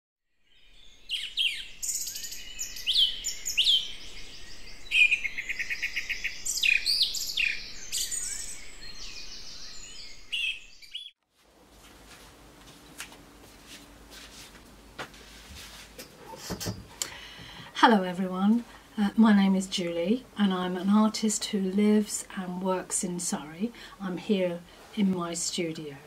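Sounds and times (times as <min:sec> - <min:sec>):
birds singing: 0:00.4 - 0:11.2.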